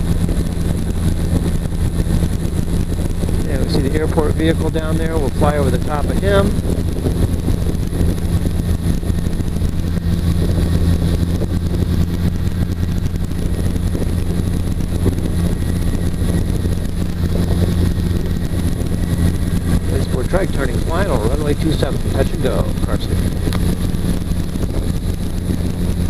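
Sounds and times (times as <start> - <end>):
engine and propeller hum: 0.0 - 26.0.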